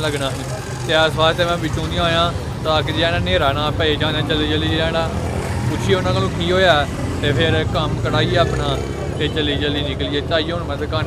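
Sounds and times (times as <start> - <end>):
low rumble of street noise: 0.0 - 11.0
man speaking: 0.0 - 11.0.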